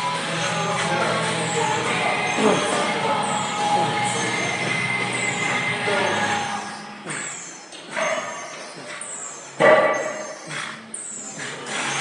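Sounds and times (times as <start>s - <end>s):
music with falling high sweeps: 0.0s - 7.0s.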